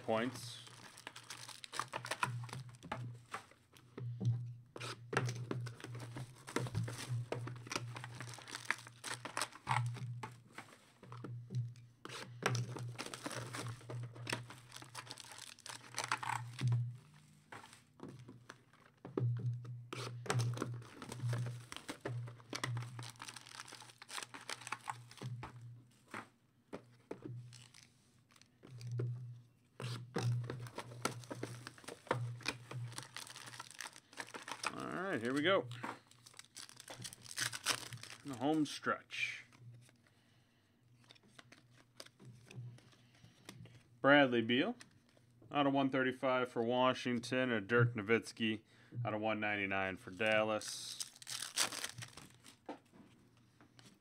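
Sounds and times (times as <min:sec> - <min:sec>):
card packs being torn open: 0:00.0 - 0:02.9, 0:05.3 - 0:10.0, 0:12.1 - 0:16.7, 0:20.0 - 0:25.3, 0:27.4 - 0:28.9, 0:29.8 - 0:38.8, 0:41.0 - 0:42.2, 0:50.8 - 0:52.6
wrappers crinkling: 0:00.0 - 0:03.4, 0:05.7 - 0:10.1, 0:12.1 - 0:18.9, 0:20.0 - 0:25.4, 0:27.3 - 0:29.0, 0:29.8 - 0:40.1, 0:41.0 - 0:43.0, 0:50.6 - 0:52.7
cards handled on a table: 0:12.1 - 0:18.9, 0:29.8 - 0:38.6.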